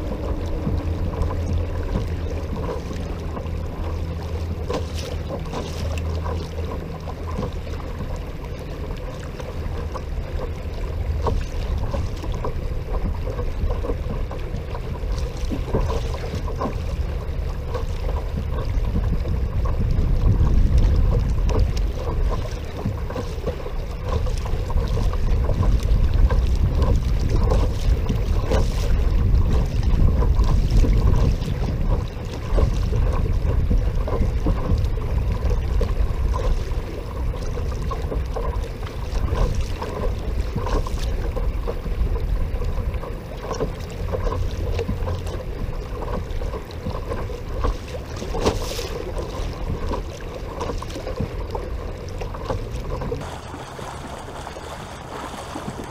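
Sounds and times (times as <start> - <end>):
faint motor hum: 0.0 - 55.9
water rushing along hull: 0.0 - 55.9
wind rumbling on microphone: 0.0 - 55.9.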